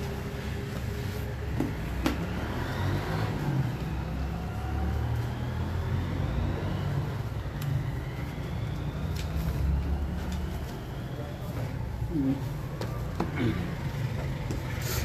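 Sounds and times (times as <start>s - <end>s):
vehicle engine rumbling: 0.0s - 15.0s.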